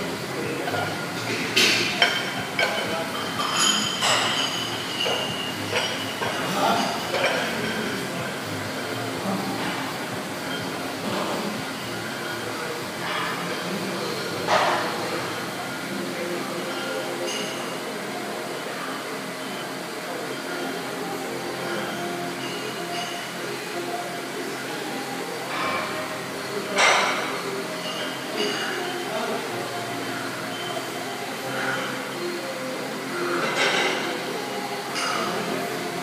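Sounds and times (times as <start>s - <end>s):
fan-like hiss and hum: 0.0s - 36.0s.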